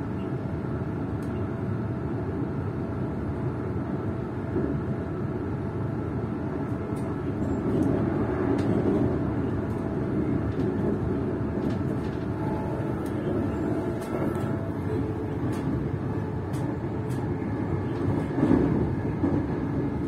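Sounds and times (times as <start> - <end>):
train running rumble: 0.0 - 20.0.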